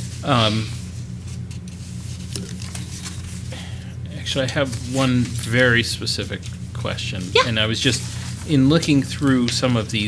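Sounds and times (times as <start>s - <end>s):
paper rustling: 0.0s - 3.5s, 4.4s - 6.6s, 7.8s - 10.0s
low electrical hum: 0.0s - 10.0s.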